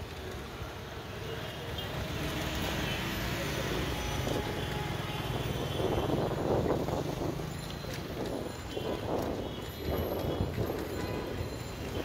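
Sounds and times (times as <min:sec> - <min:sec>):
traffic engine rumble: 0:00.0 - 0:12.0.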